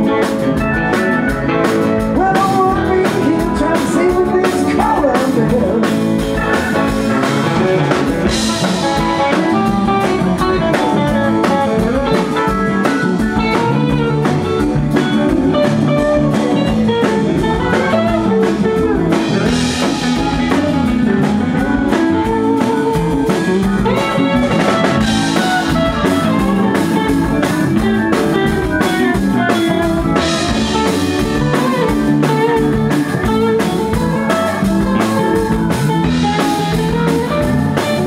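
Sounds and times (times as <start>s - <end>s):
drum kit steady beat: 0.0s - 38.0s
electric guitar bending notes: 0.0s - 38.0s.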